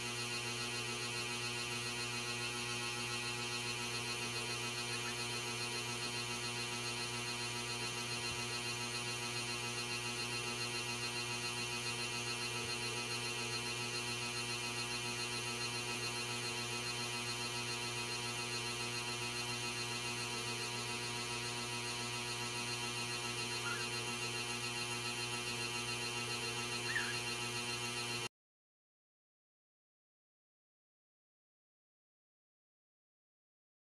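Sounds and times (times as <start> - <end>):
buzzy electrical mains hum: 0.0 - 28.3.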